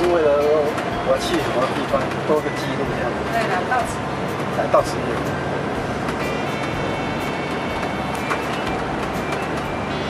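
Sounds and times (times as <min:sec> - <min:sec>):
bus engine and road noise: 0:00.0 - 0:10.0
music playing: 0:00.0 - 0:10.0.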